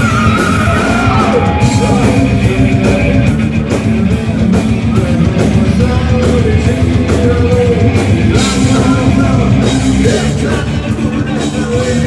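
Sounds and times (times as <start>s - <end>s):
distorted electric guitar riffing: 0.0s - 12.0s
drums steady beat: 0.0s - 12.0s.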